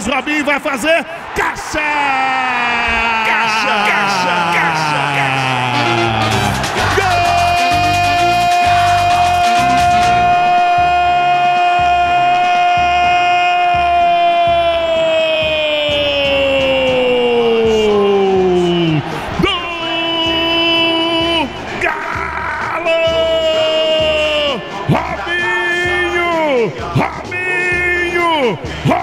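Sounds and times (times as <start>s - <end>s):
radio narrator shouting: 0.0s - 15.1s
crowd cheering: 0.0s - 29.0s.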